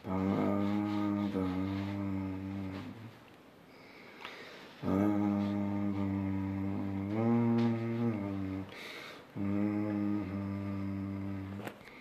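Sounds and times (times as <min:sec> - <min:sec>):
man humming: 0:00.0 - 0:03.2, 0:04.8 - 0:12.0.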